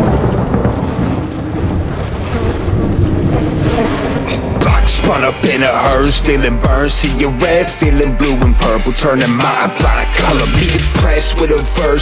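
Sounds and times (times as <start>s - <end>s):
rumbling thunder: 0.0s - 6.8s.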